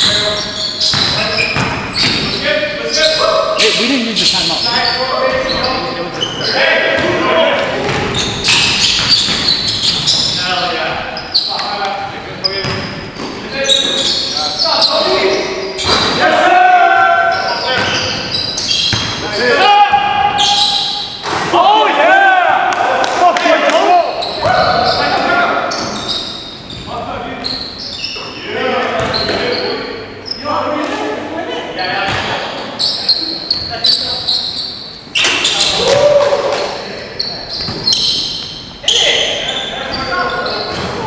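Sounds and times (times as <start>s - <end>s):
players calling out: 0.0s - 30.7s, 31.4s - 41.0s.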